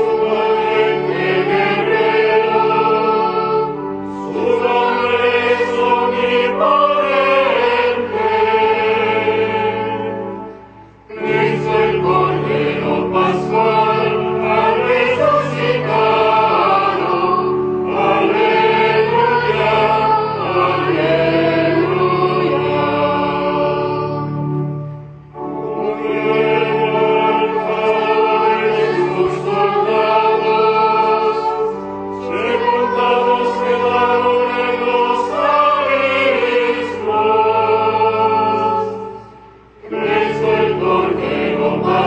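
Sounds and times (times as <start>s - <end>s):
choir singing a hymn: 0.0s - 42.0s
low sustained accompaniment: 0.0s - 42.0s.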